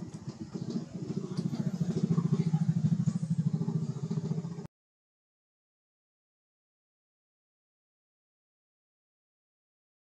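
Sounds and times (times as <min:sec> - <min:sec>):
engine running with rapid pulse: 0:00.0 - 0:04.7.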